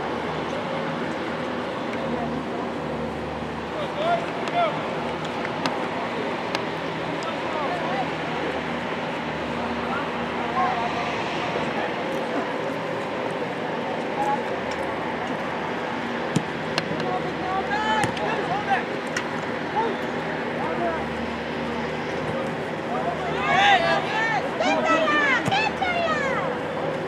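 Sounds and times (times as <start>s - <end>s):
distant players shouting: 22.2s - 26.7s.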